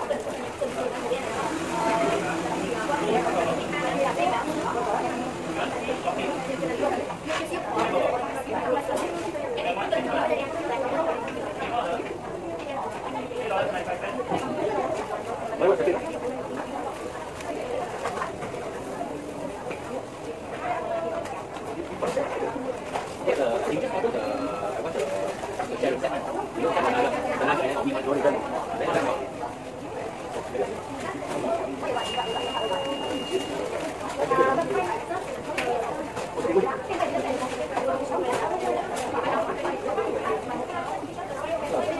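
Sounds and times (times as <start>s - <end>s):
babble of voices: 0.0s - 41.9s.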